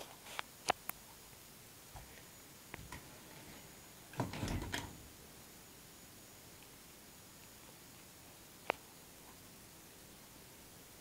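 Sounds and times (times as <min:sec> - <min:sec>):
knocks and rubbing: 0:02.8 - 0:05.0.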